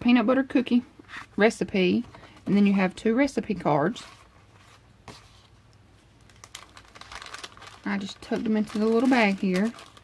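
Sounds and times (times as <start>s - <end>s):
paper rustling: 6.2s - 10.0s.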